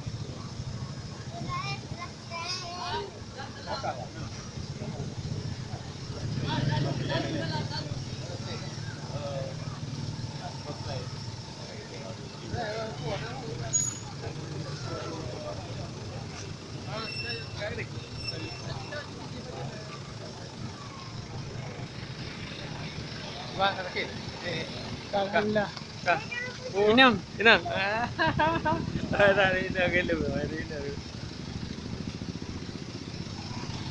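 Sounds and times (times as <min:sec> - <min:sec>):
people talking: 0:00.0 - 0:31.1
fire truck engine idling: 0:06.8 - 0:33.9.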